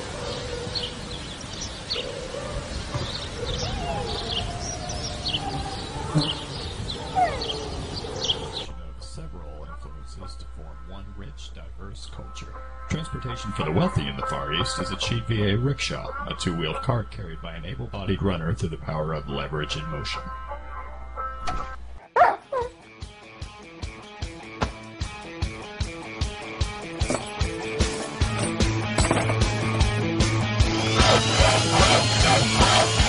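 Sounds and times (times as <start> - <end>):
wind rumble: 0.0 - 9.0
birds chirping: 0.0 - 21.3, 26.3 - 33.0
small dog yelping whines: 3.3 - 6.4, 7.0 - 7.6, 22.2 - 22.7.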